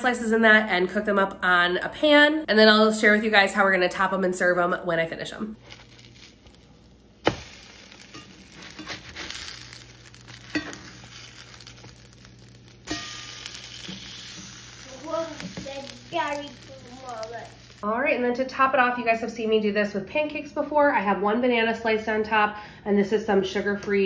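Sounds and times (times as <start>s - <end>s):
bread sizzling in a pan: 5.6s - 17.9s.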